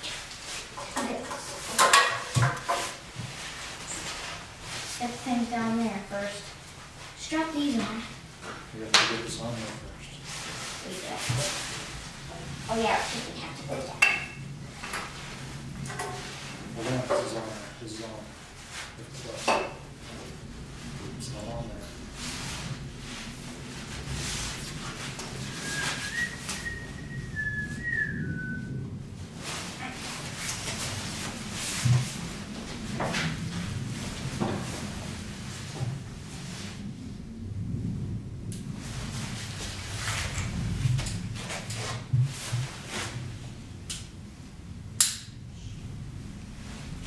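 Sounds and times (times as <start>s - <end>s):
person whistling: 25.4s - 28.8s.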